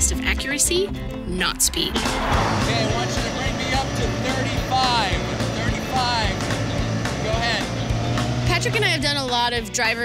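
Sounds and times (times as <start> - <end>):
background music: 0.0 - 10.0
man's voice: 2.0 - 7.8
car engine idling: 2.0 - 9.6.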